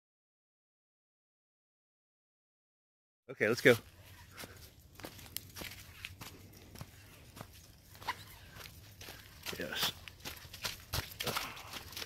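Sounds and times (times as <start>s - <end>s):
footsteps crunching dry leaves: 3.5s - 12.0s.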